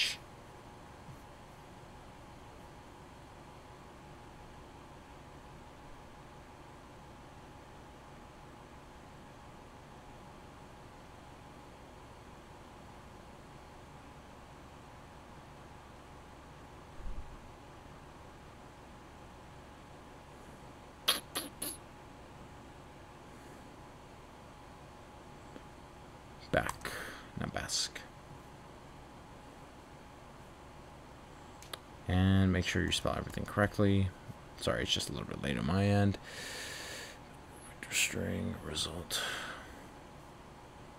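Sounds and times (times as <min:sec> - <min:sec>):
microphone hiss: 0:00.0 - 0:40.9.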